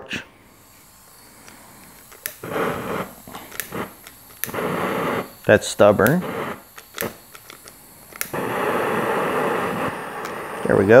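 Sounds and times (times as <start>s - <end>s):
gas hissing from torch: 0.0s - 11.0s
spark striker clicks: 0.5s - 10.7s.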